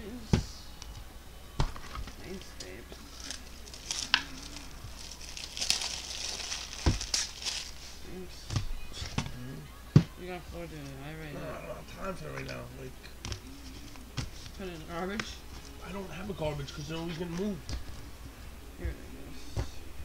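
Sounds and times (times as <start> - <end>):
foil wrapper crinkling: 3.1 - 7.8.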